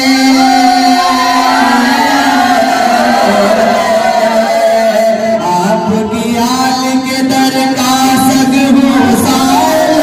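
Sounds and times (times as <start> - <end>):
man chanting devotional song: 0.0 - 10.0.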